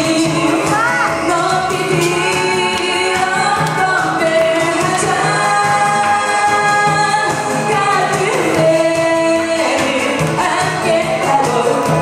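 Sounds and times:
musical accompaniment: 0.0s - 12.0s
woman singing into a microphone: 0.0s - 12.0s.

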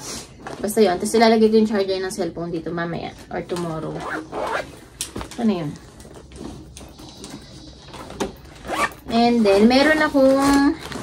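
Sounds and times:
zipper being pulled: 3.9s - 4.8s, 8.6s - 9.1s.

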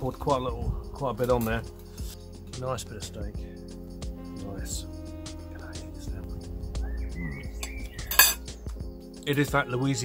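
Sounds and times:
cutlery clatter: 8.1s - 8.4s
cutlery clinking on a plate: 8.1s - 8.4s.

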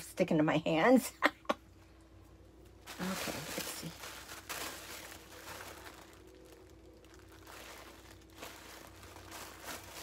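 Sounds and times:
tissue paper crinkling: 2.5s - 10.0s.

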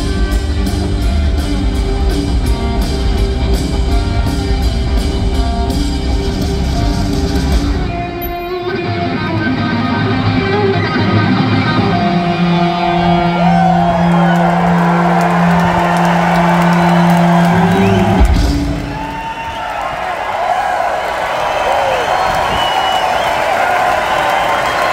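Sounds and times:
electric guitar and bass chord ringing: 0.0s - 19.0s
crowd cheering and whooping: 11.6s - 24.9s.

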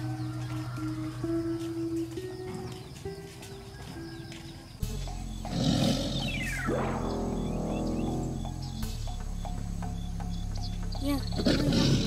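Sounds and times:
background music with held tones: 0.0s - 12.0s
steeply falling pitch sound: 6.2s - 8.7s.

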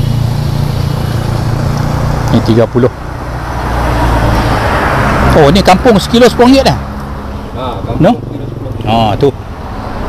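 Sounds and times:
vehicle passing close by: 0.0s - 10.0s.

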